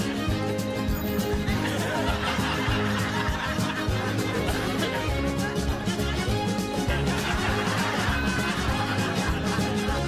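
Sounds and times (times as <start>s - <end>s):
light background music: 0.0s - 10.0s
person snickering and laughing: 1.4s - 10.0s.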